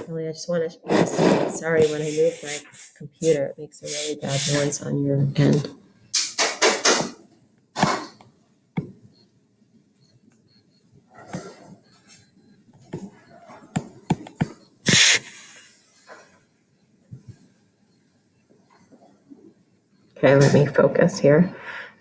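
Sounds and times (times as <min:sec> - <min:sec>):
stylus scraping: 0:00.8 - 0:04.8, 0:12.9 - 0:16.2.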